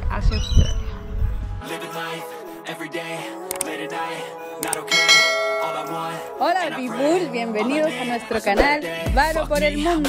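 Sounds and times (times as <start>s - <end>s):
background music: 1.4s - 10.0s
bell-like chime ringing: 4.9s - 6.4s.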